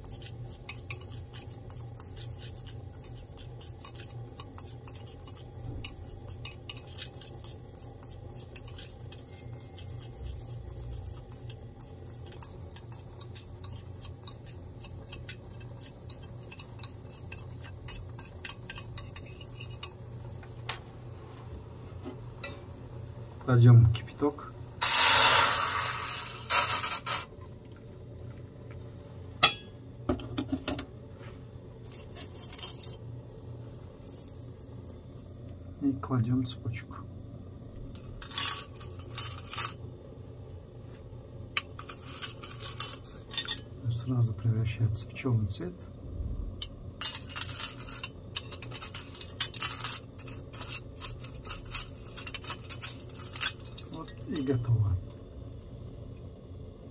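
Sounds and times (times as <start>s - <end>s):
water hissing on hot pot: 0.0s - 6.2s, 6.8s - 16.4s, 24.8s - 27.3s
steady low hum: 0.0s - 56.9s
metal chain clinking in pot: 31.9s - 33.0s, 37.9s - 39.8s, 41.6s - 43.7s, 47.0s - 54.6s.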